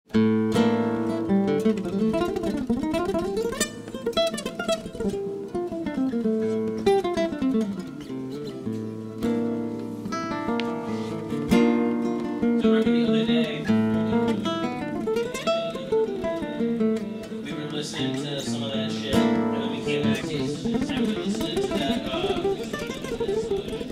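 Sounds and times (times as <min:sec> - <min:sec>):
acoustic guitar playing: 0:00.1 - 0:23.9.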